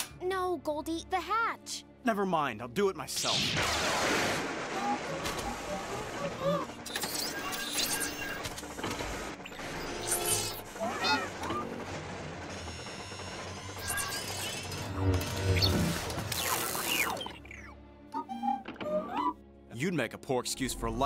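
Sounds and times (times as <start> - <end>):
film score music: 0.0 - 21.0
robot beeping and whistling: 13.7 - 19.4.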